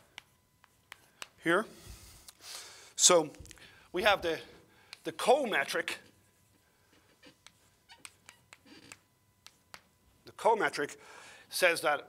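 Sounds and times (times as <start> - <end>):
chalk tapping and scraping: 0.0 - 1.4, 6.3 - 9.9.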